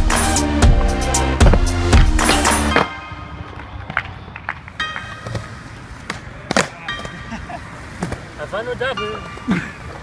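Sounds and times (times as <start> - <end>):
skateboard wheels rolling on concrete: 0.0 - 10.0
skateboard clacking on ground: 1.4 - 10.0.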